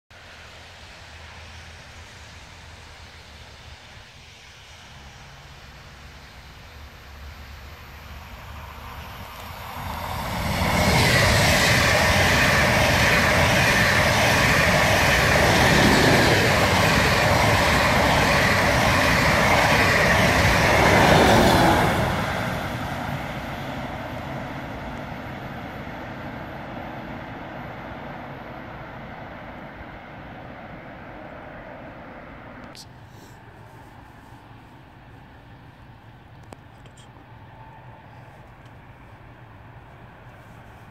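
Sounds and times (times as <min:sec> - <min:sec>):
electric train passing: 0:00.2 - 0:32.7, 0:37.2 - 0:40.8.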